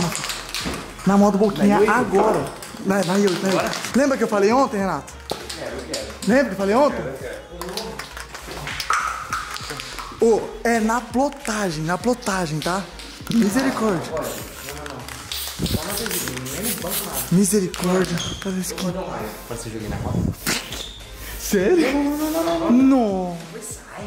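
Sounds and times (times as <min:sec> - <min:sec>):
aerosol spray can hissing: 0:13.0 - 0:18.4, 0:22.2 - 0:22.6.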